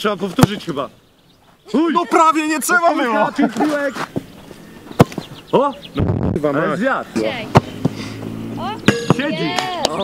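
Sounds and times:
players shouting: 0:01.7 - 0:04.0, 0:07.2 - 0:10.0.

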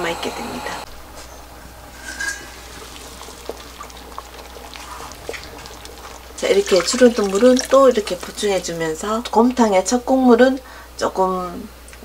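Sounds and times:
broth bubbling in a pot: 0:01.4 - 0:10.1.

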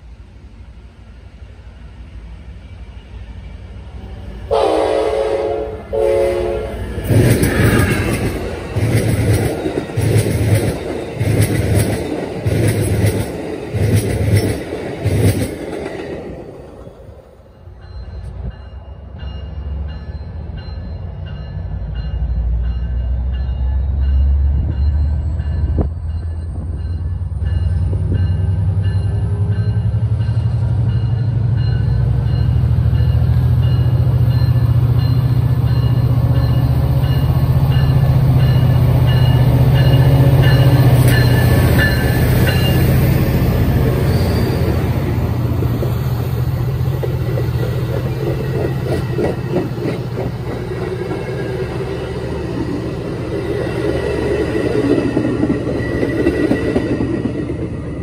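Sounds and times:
diesel locomotive engine drone: 0:00.0 - 0:58.0
train cars rattling over rails: 0:04.2 - 0:58.0.

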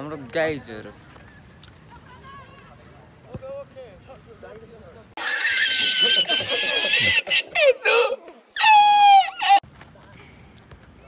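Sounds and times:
man laughing high-pitched: 0:05.2 - 0:09.6.

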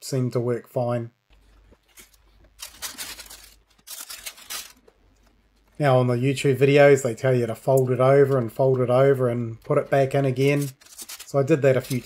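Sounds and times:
baking paper crinkling: 0:01.5 - 0:05.6, 0:09.9 - 0:12.0.

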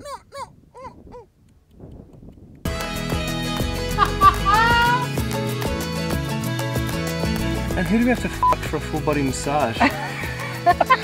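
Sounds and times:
short wailing calls: 0:04.3 - 0:05.1.

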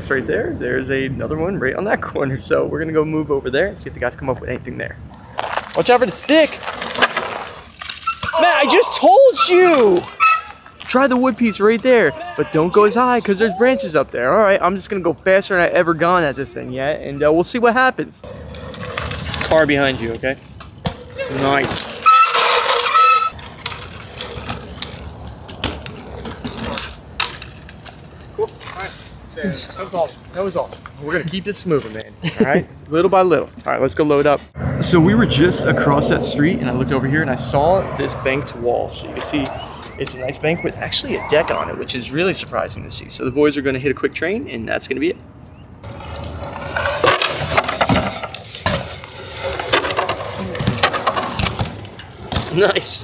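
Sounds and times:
bike tyres rolling on asphalt: 0:05.1 - 0:12.1, 0:18.2 - 0:31.0, 0:45.5 - 0:53.0.

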